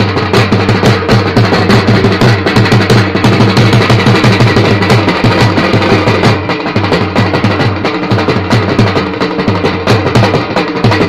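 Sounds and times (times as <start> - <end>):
fast even drumming: 0.0 - 11.0.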